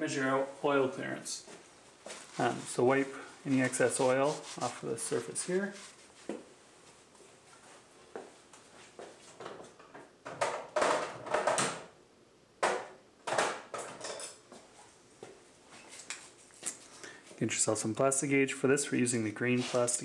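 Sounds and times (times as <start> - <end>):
hands rustling and rubbing: 1.5 - 9.4, 15.7 - 17.0.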